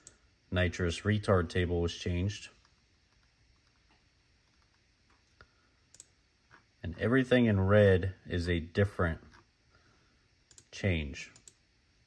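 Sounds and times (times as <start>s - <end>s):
computer mouse clicks: 2.6s - 6.1s, 10.5s - 10.7s, 11.3s - 11.6s.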